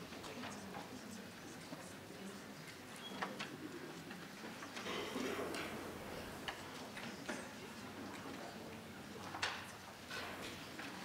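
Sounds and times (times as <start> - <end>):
low hiss of a hall: 0.0 - 11.0.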